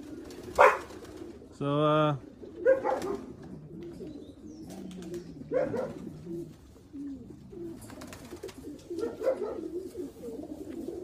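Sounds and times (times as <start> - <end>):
pigeons cooing softly: 0.0 - 11.0.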